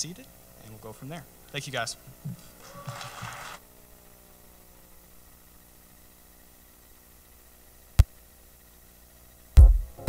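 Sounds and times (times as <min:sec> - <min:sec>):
steady low hum: 0:00.0 - 0:10.0
paper rustling: 0:02.6 - 0:03.6.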